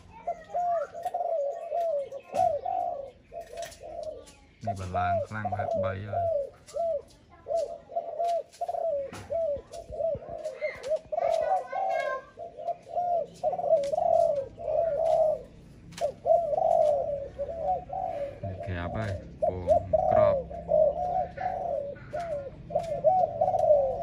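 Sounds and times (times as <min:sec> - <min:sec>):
dove cooing: 0:00.0 - 0:24.0.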